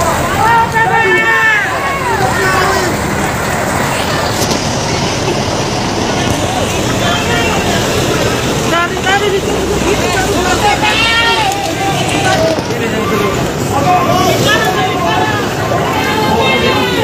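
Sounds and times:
crowd shouting and talking: 0.0s - 17.0s
vehicle noise: 0.0s - 17.0s.

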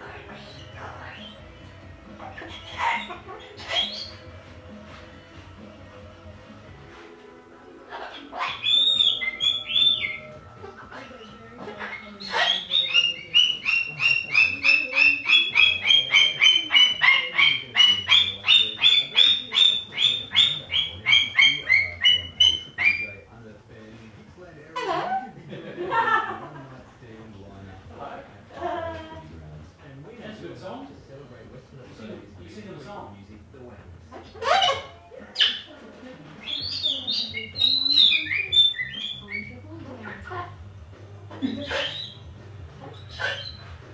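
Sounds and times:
cockatoo calling: 0.0s - 5.0s, 7.8s - 23.3s, 24.8s - 26.3s, 34.1s - 40.6s, 41.2s - 43.9s.

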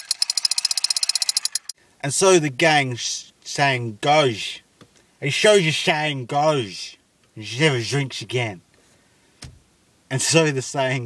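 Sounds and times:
toy gun rapid clicks: 0.0s - 1.8s.

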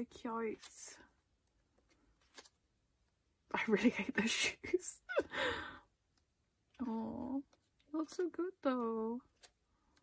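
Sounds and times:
woman sighing: 5.2s - 5.9s.

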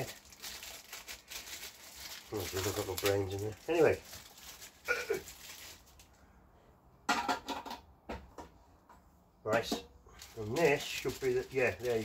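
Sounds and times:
paper wrapping crinkling: 0.0s - 6.1s, 10.1s - 12.0s.

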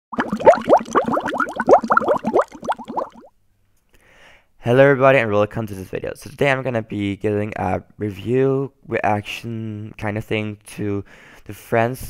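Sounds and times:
rising bubbling bloops: 0.1s - 3.3s.

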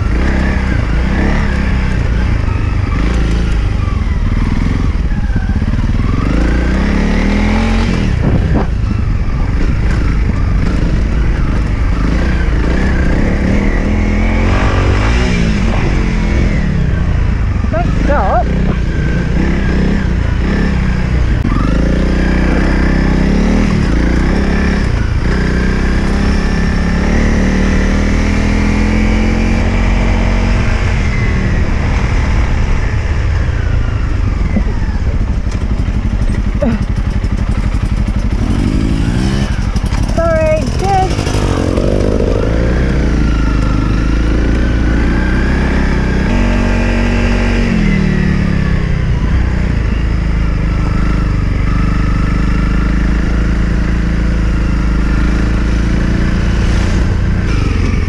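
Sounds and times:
motorbike engine revving: 0.0s - 58.0s
wind noise on microphone: 7.2s - 21.7s.

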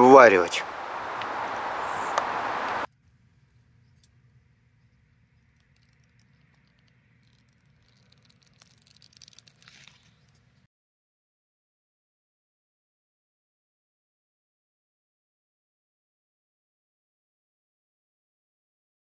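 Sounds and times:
outdoor background noise: 0.0s - 10.7s.

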